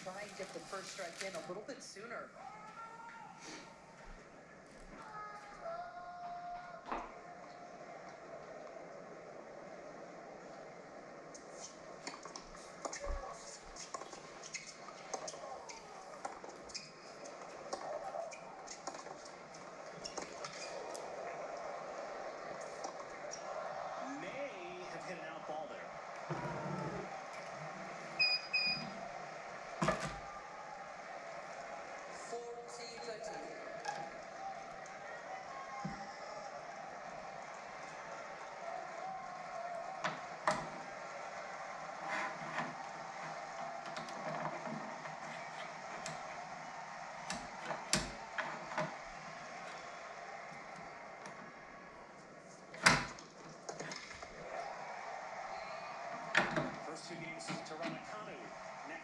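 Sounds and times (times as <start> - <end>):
faint television murmur: 0.0 - 59.0.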